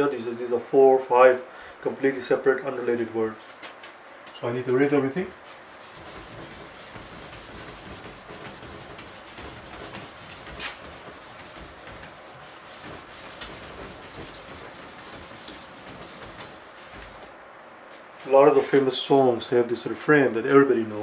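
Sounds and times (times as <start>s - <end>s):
cloth scrubbing a whiteboard: 4.4s - 19.2s.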